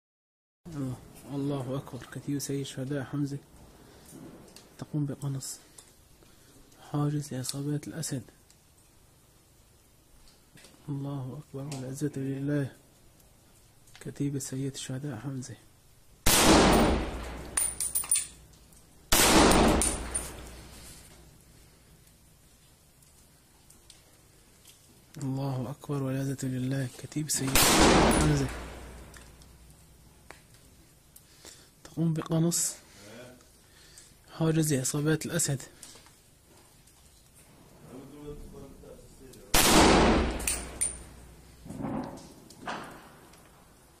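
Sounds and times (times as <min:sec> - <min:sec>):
rifle shots with echo: 0:16.2 - 0:17.8, 0:19.1 - 0:20.7, 0:27.5 - 0:29.1, 0:39.5 - 0:41.2
light metallic clinks: 0:16.7 - 0:18.9, 0:19.5 - 0:21.2, 0:28.0 - 0:29.9, 0:40.3 - 0:41.5
ringing metallic clinks: 0:17.2 - 0:18.4, 0:19.7 - 0:20.6, 0:40.4 - 0:41.2.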